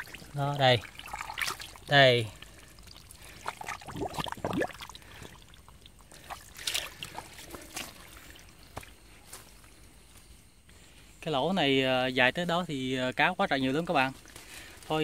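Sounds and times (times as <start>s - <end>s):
hands splashing in muddy water: 0.0s - 8.9s
water dripping: 0.0s - 9.0s.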